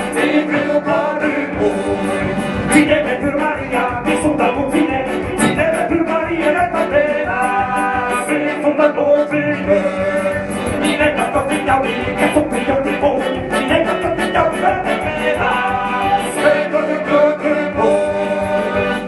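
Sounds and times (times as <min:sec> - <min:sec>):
folk band playing: 0:00.0 - 0:19.0.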